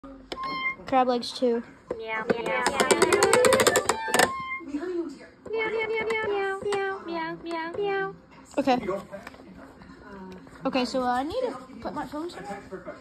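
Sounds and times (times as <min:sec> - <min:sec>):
toy electronic keyboard notes: 0:00.3 - 0:00.8, 0:02.4 - 0:04.7.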